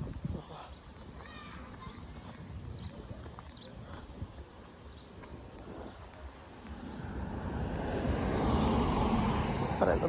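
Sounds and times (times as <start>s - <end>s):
car driving by: 6.8s - 10.0s.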